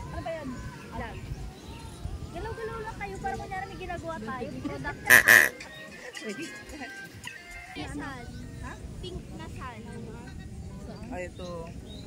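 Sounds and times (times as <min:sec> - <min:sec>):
background music: 0:04.2 - 0:08.9
loud falling calls: 0:05.1 - 0:05.6.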